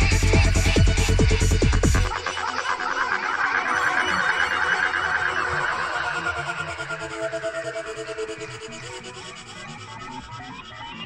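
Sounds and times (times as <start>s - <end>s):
warbling synthesizer texture: 0.0s - 11.0s.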